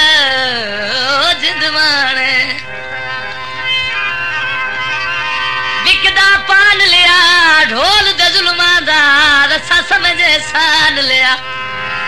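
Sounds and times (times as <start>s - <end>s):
sustained instrumental accompaniment: 0.0s - 12.0s.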